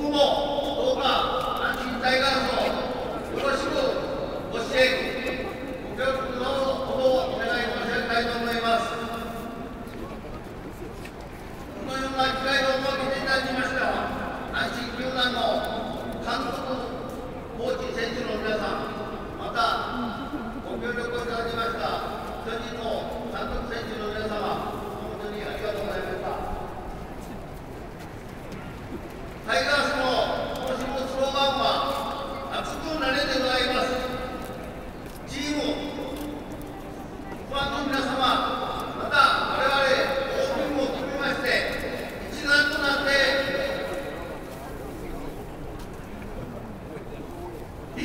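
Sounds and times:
man speaking over public address: 0:00.0 - 0:27.0, 0:29.4 - 0:48.0
stadium crowd ambience: 0:00.0 - 0:48.0.

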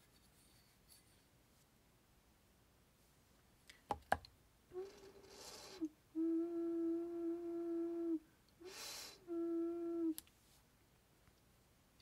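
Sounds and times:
breathy rush of air: 0:06.5 - 0:10.2
ocarina low note: 0:09.2 - 0:10.2.

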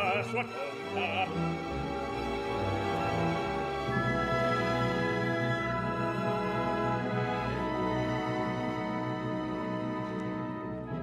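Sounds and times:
orchestral strings sustained chord: 0:00.0 - 0:10.2.

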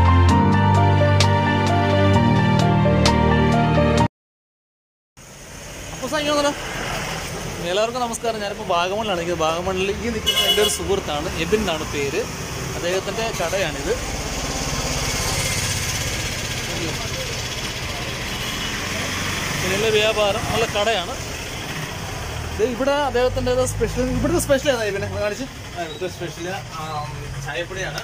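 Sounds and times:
people talking: 0:06.0 - 0:06.6, 0:07.6 - 0:14.0, 0:16.6 - 0:21.2, 0:22.6 - 0:28.0
vehicle engine running: 0:09.2 - 0:28.0.

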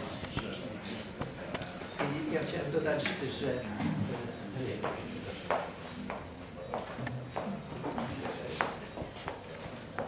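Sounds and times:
faint room murmur: 0:00.0 - 0:10.0.

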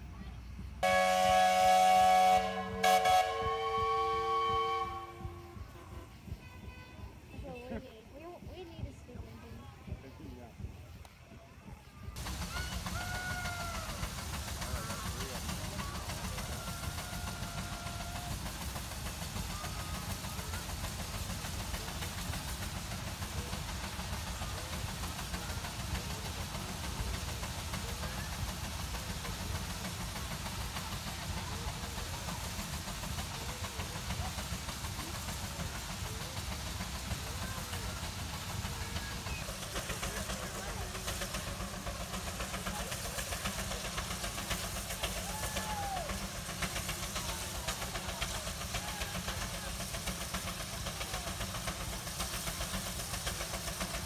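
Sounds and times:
steam engine exhaust beat: 0:00.0 - 0:54.0.

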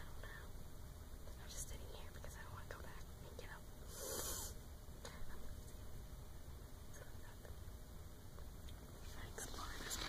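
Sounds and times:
woman whispering: 0:00.0 - 0:00.6, 0:01.3 - 0:03.7, 0:05.0 - 0:05.8, 0:06.9 - 0:07.6, 0:09.0 - 0:10.0
breathy hiss: 0:03.8 - 0:04.7.

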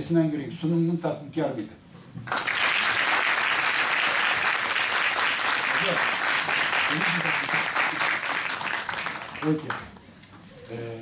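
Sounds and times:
audience applauding: 0:02.3 - 0:10.0.

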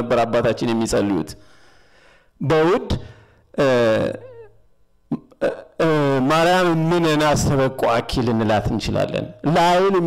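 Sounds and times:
man preaching into microphone: 0:00.0 - 0:01.4, 0:02.4 - 0:04.4, 0:05.4 - 0:10.0.

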